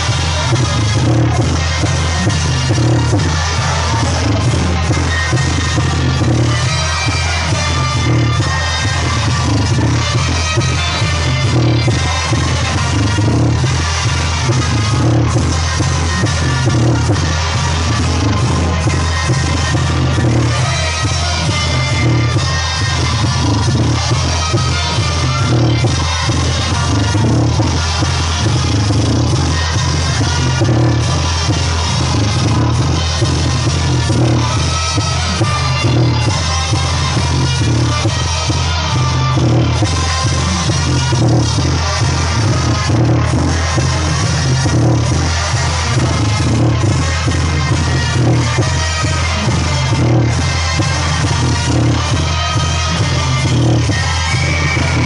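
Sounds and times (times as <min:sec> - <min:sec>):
loud dance music: 0:00.0 - 0:55.0.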